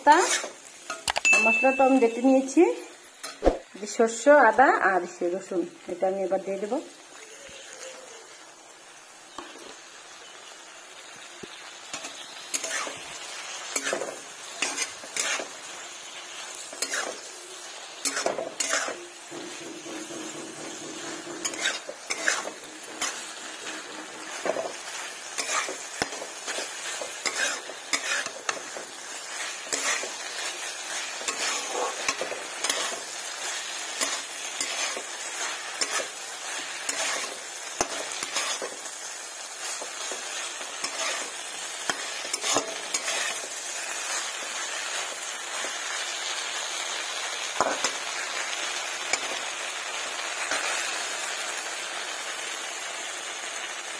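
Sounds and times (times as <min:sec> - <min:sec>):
food sizzling in a frying pan: 0:00.0 - 0:53.9
spatula scraping a pan: 0:00.1 - 0:01.1, 0:11.9 - 0:45.8.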